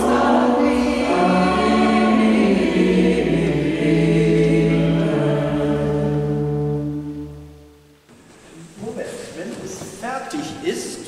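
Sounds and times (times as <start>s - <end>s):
choir holding a chord: 0.0s - 7.8s
man talking: 8.5s - 11.0s.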